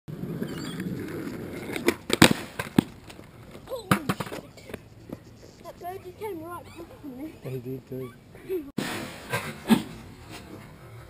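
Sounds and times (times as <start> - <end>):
skateboard wheels rolling on concrete: 0.1 - 7.0
skateboard clacking on ground: 0.3 - 5.2.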